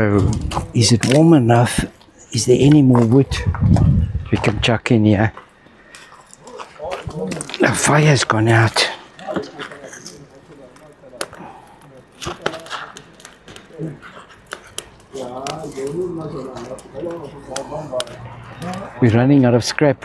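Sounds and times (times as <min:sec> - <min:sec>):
quiet talking: 0:08.8 - 0:19.1.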